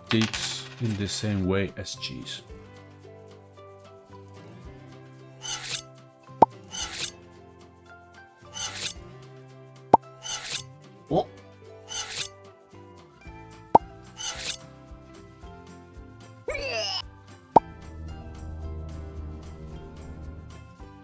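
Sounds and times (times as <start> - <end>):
background music: 0.0 - 21.0
knife slicing on glass board: 5.4 - 5.8, 8.6 - 9.0, 10.2 - 10.6, 11.9 - 12.3, 14.2 - 14.6.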